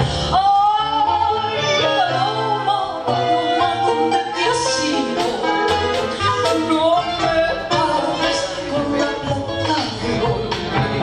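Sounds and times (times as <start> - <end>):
live band accompaniment: 0.0 - 11.0.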